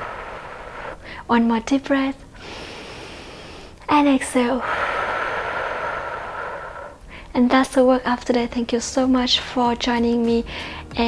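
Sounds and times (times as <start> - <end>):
woman exhaling slowly: 0.0 - 1.2, 4.6 - 7.2.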